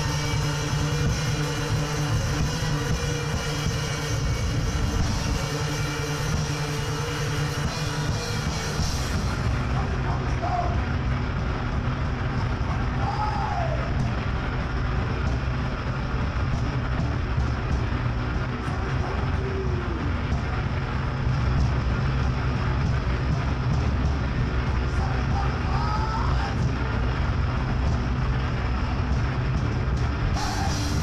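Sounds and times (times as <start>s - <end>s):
heavy rock band playing: 0.0s - 31.0s.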